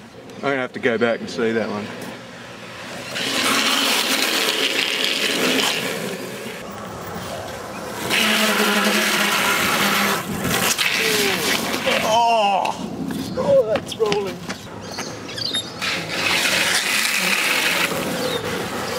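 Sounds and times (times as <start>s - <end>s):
longboard wheels scraping asphalt: 1.8s - 12.2s, 14.8s - 18.9s.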